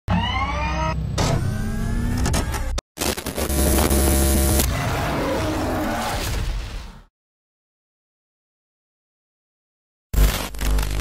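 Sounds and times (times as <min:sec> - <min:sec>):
motor-like whirr rising in pitch: 0:00.1 - 0:02.8.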